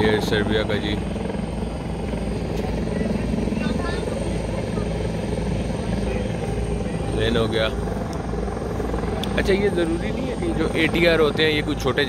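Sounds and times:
turboprop engine drone: 0:00.0 - 0:12.0.

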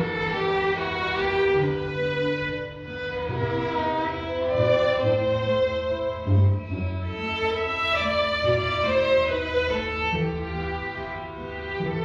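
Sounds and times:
low cello line: 0:00.0 - 0:12.0
string orchestra held notes: 0:00.0 - 0:12.0.

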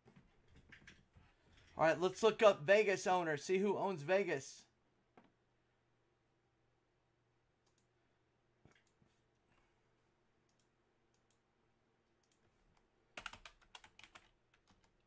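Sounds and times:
faint typing on keyboard: 0:12.2 - 0:15.0.

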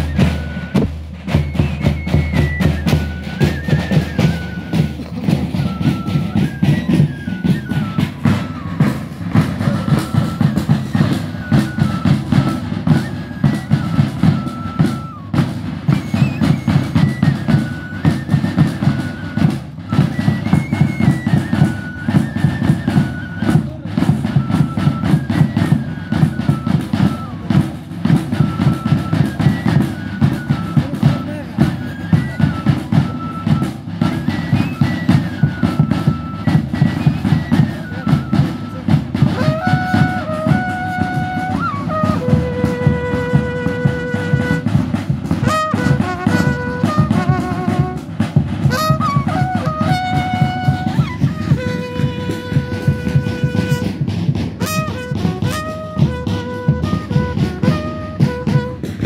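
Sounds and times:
high flutes playing melody: 0:00.0 - 0:59.0
bass drums beating: 0:39.4 - 0:59.0.

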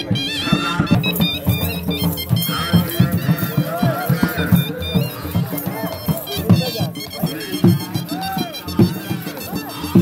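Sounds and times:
drum beaten in dance rhythm: 0:00.0 - 0:10.0
wind instrument melody: 0:00.0 - 0:10.0.

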